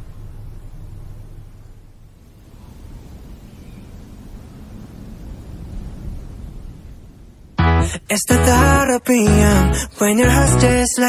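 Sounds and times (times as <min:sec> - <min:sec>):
low steady rumbling: 0:00.0 - 0:10.9.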